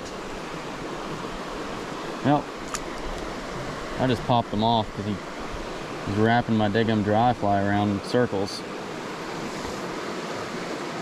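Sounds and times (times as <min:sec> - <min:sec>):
shallow creek water rushing: 0:00.0 - 0:11.0.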